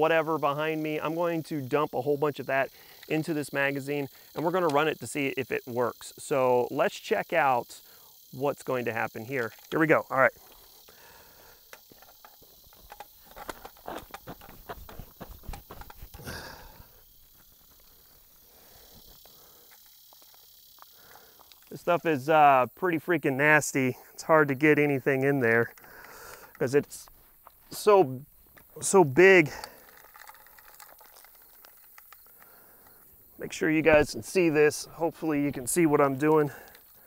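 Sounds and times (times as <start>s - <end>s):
grit crackling in metal magazine: 11.7s - 16.3s, 29.5s - 33.2s
hand scraping dry slate and clay: 11.8s - 19.8s
gritty rush of falling soil: 12.8s - 19.3s.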